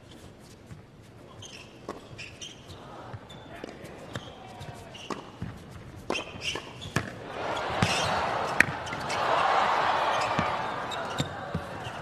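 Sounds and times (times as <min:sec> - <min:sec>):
sneaker squeaks on court: 0:01.3 - 0:05.3, 0:06.1 - 0:12.0
racquet hitting tennis ball: 0:03.6 - 0:12.0.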